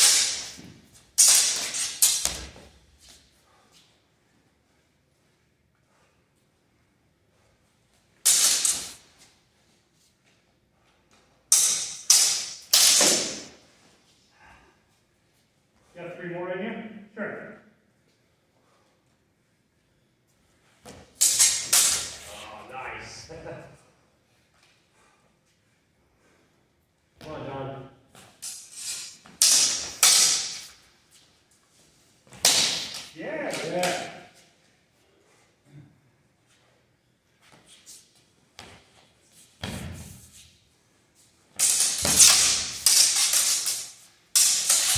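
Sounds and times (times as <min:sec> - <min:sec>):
sword blades clashing and ringing: 0:00.0 - 0:02.5, 0:08.2 - 0:09.0, 0:11.5 - 0:13.6, 0:21.2 - 0:22.3, 0:28.4 - 0:30.8, 0:41.6 - 0:44.9.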